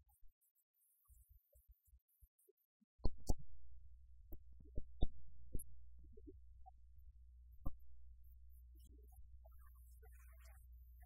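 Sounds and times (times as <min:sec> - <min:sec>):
low steady hum: 0:03.0 - 0:11.0.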